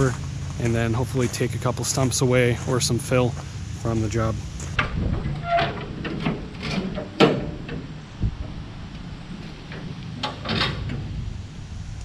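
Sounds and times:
metal door latch clank: 4.8s - 8.6s, 9.4s - 11.2s.

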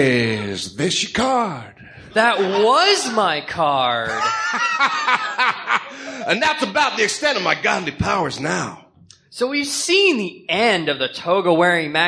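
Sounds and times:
man chuckling: 4.1s - 6.5s.

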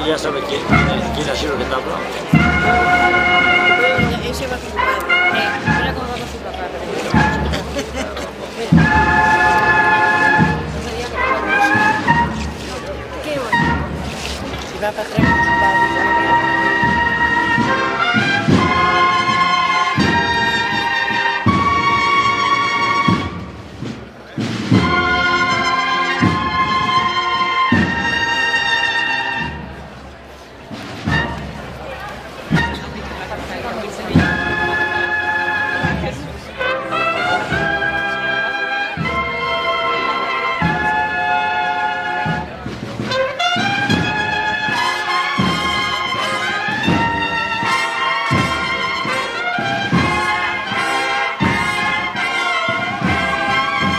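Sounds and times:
brass band playing a march: 0.0s - 53.9s.

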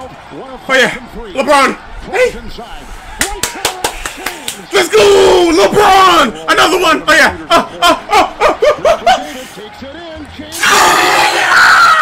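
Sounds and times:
sports commentator speaking: 0.0s - 3.1s, 4.5s - 11.4s
sharp hand claps: 3.2s - 4.7s.

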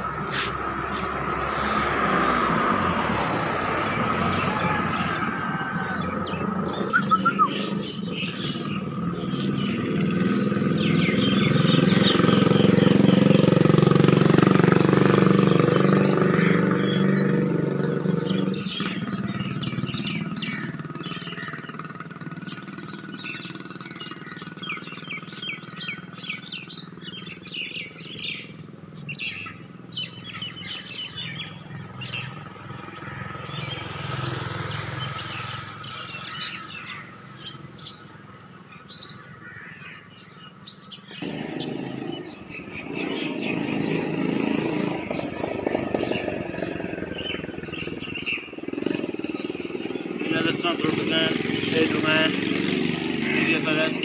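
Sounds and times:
small birds chirping: 0.0s - 54.0s
motor engine running: 5.8s - 38.3s, 41.1s - 54.0s.

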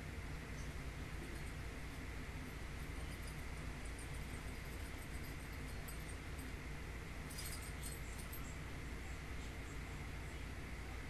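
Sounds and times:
low room hum and hiss: 0.0s - 11.0s
light metallic jingle: 0.6s - 9.2s.

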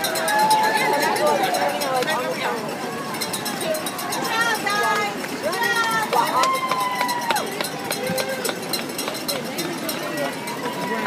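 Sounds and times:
runners' shoes pattering on pavement: 0.0s - 11.0s
spectators shouting and cheering: 0.0s - 11.0s.

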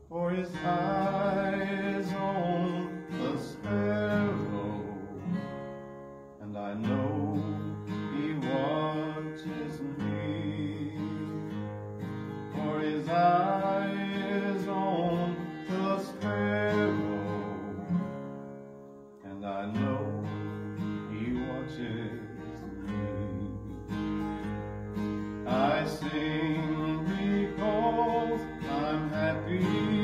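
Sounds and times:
man singing long notes: 0.0s - 5.6s, 6.4s - 11.6s, 12.5s - 18.2s, 19.2s - 23.9s, 25.4s - 30.0s
acoustic guitar strumming: 0.0s - 30.0s.

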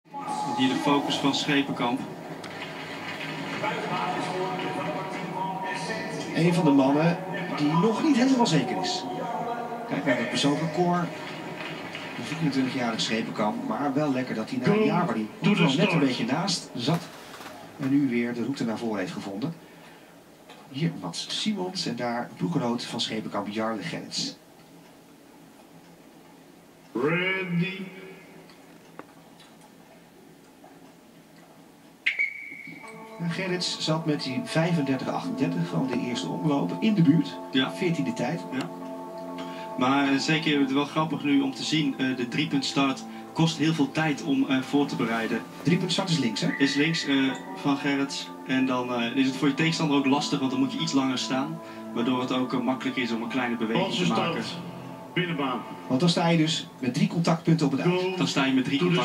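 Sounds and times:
indistinct voices: 0.1s - 18.5s.

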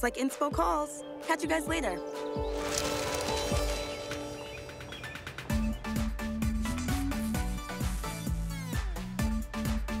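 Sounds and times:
music with kick-drum beat: 5.5s - 10.0s.

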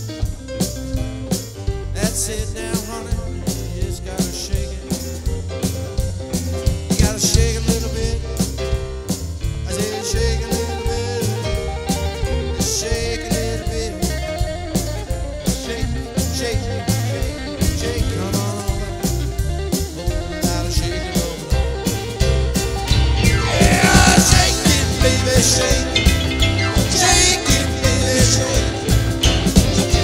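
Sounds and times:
drum kit driving beat: 0.0s - 30.0s
electric guitar: 0.0s - 30.0s.

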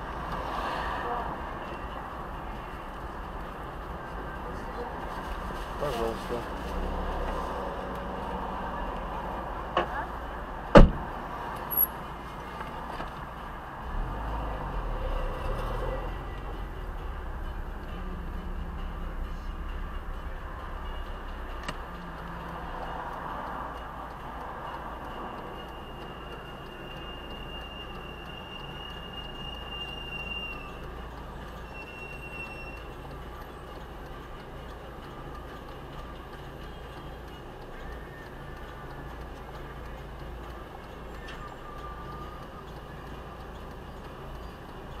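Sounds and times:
car engine idling: 0.0s - 31.8s
passing traffic: 0.0s - 45.0s.

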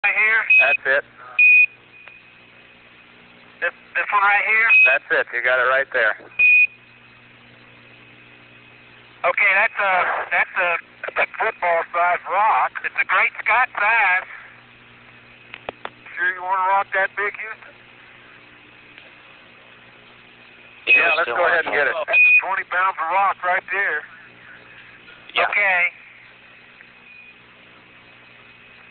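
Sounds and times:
radio hiss: 0.0s - 28.9s
low hum: 0.3s - 28.9s.

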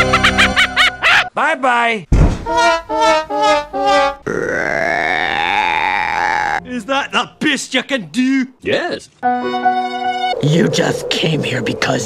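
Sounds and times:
long burp: 4.2s - 6.6s.

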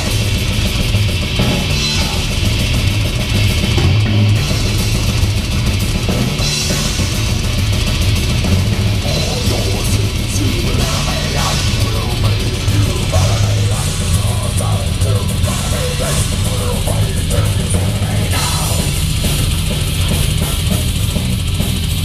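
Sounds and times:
bass guitar: 0.0s - 22.0s
cymbals washing: 0.0s - 22.0s
drum kit: 0.0s - 22.0s
electric guitar: 0.0s - 22.0s.

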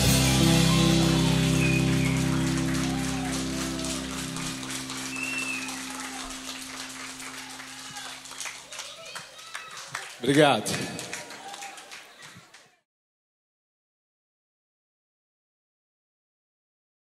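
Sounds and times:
band chord ringing out: 0.0s - 8.6s
audience applause: 0.0s - 12.8s.

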